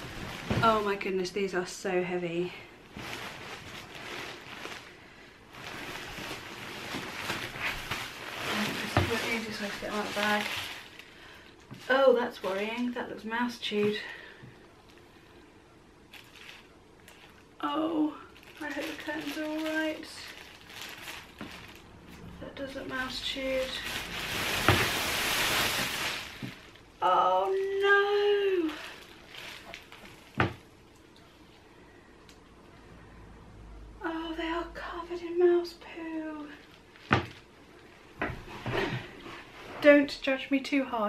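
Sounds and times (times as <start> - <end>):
plastic bag crinkling: 2.8 - 14.3, 16.1 - 31.2, 36.5 - 37.9.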